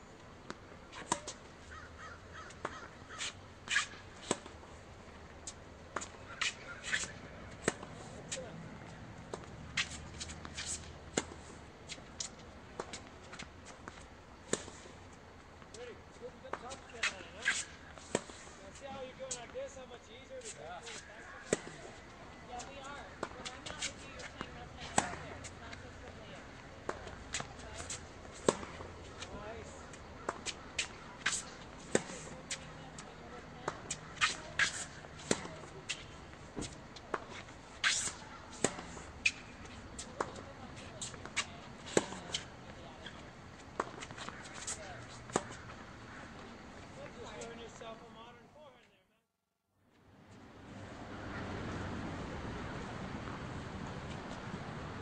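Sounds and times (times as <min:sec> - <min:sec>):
tennis balls hit with rackets: 0:00.4 - 0:05.3, 0:05.9 - 0:14.8, 0:20.4 - 0:46.6
tennis balls bouncing on court: 0:00.4 - 0:14.8, 0:20.5 - 0:47.8.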